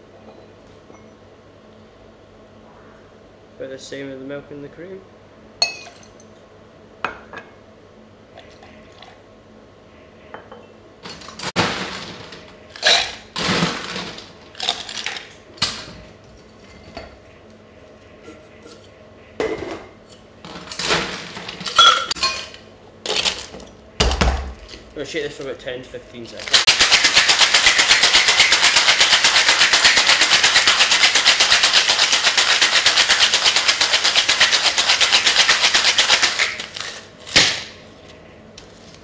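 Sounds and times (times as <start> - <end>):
ice clattering in metal shaker: 11.6 - 15.3, 26.4 - 37.1.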